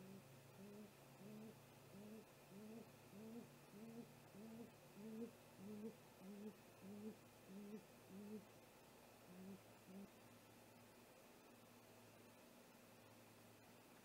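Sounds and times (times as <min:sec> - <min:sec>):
owl hooting deeply: 0:00.0 - 0:08.5, 0:09.3 - 0:10.1.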